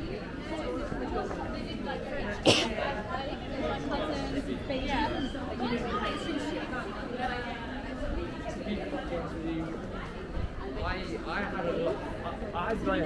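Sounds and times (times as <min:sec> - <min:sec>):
passers-by chattering: 0:00.0 - 0:13.0.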